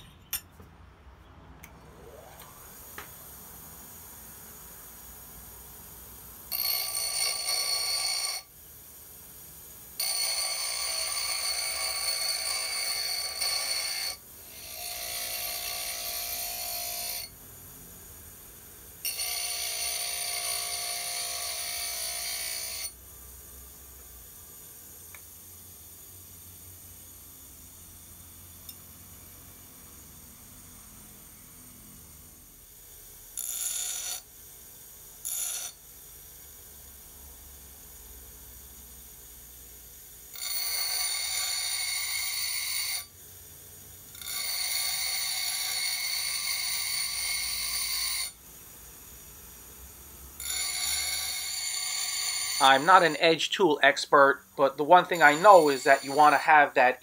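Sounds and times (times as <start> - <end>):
grinder wheel spinning freely: 5.3 - 8.5, 9.8 - 30.1, 40.2 - 43.2, 43.9 - 48.4, 49.8 - 53.4, 54.4 - 57.0
grinder wheel grinding steel: 6.5 - 8.5, 10.0 - 17.4, 19.0 - 23.0, 40.3 - 43.1, 44.1 - 48.4, 50.3 - 57.0.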